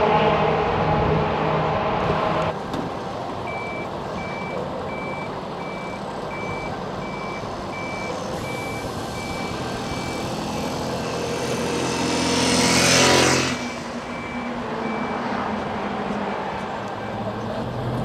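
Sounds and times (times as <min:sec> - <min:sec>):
diesel truck engines running: 0:00.0 - 0:18.0
truck reversing alarm beeping: 0:03.4 - 0:15.4.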